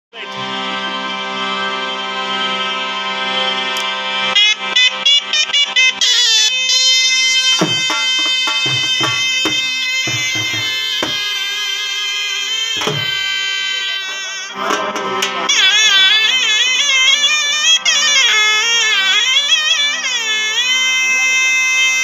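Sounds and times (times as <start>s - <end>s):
harmonium drone: 0.2s - 22.0s
shehnai melody: 0.2s - 22.0s
low percussive thumps: 6.8s - 11.5s, 12.8s - 13.5s.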